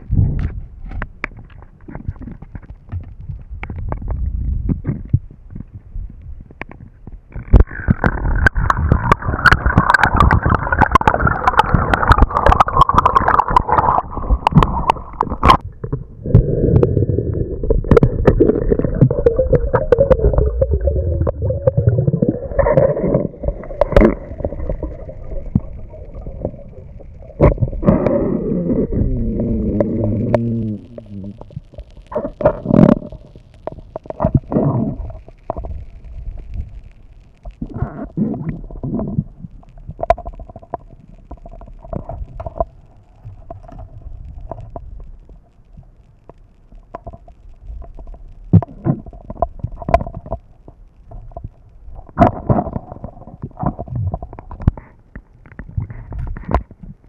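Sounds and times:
underwater gurgling and bubbling: 6.8s - 46.0s, 46.8s - 57.0s.

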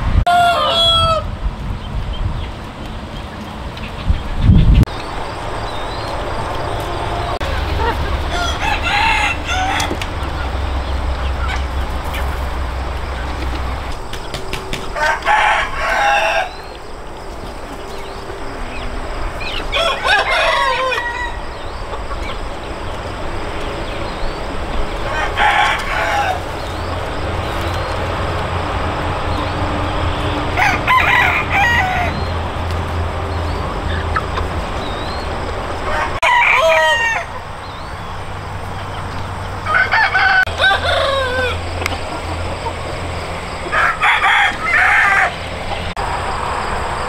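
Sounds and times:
roosters crowing: 0.2s - 1.4s, 4.8s - 47.0s.

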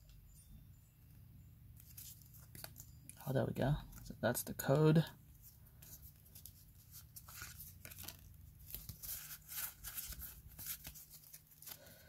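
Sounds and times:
trading cards rustling: 1.8s - 12.0s.

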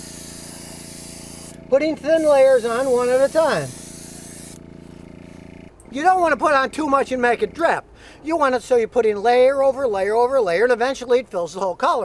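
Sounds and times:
airbrush spraying hiss: 0.0s - 5.4s
airbrush compressor humming: 0.0s - 7.6s.

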